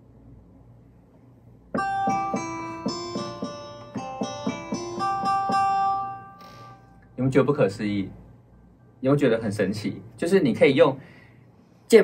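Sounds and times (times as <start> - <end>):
plucked guitar notes: 1.8 - 6.4.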